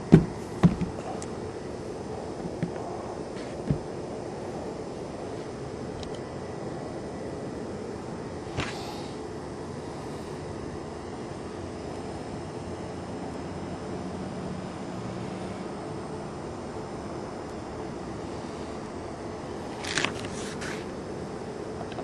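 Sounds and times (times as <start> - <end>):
background rumble and hiss: 0.0 - 22.0.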